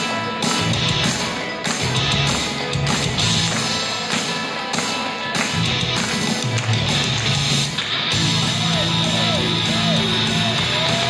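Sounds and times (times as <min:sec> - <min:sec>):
pop backing music over pa: 0:00.0 - 0:11.0.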